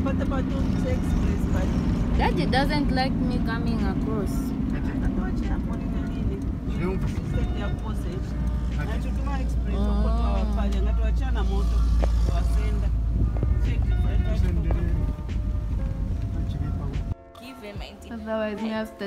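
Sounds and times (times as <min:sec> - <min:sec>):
voices: 0:00.0 - 0:15.4
car engine and road rumble: 0:00.0 - 0:19.0
music: 0:00.0 - 0:19.0.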